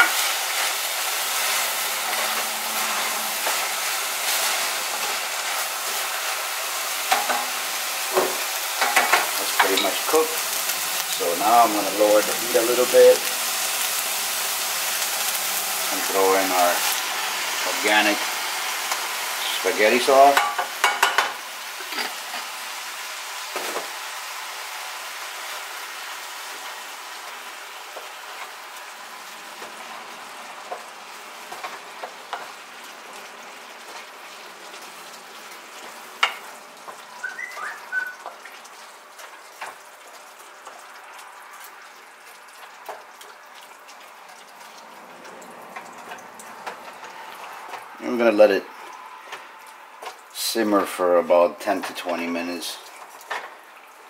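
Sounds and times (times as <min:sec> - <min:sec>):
wooden spoon scraping a pan: 0:00.0 - 0:06.0
sauce sizzling in a saucepan: 0:00.0 - 0:54.0.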